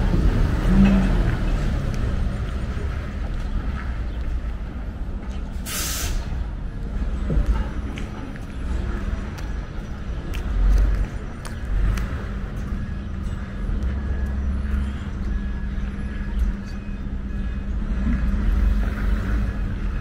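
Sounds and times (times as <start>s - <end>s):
motor vehicles rumbling: 0.0s - 20.0s.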